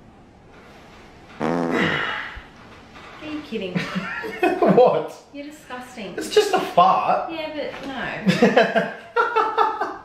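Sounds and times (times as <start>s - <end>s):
buzzing fart: 1.3s - 2.4s.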